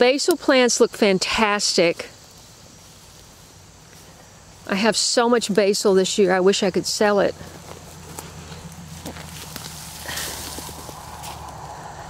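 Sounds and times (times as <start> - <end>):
leaves rustling: 0.9 - 12.0
footsteps on mulch path: 2.0 - 12.0.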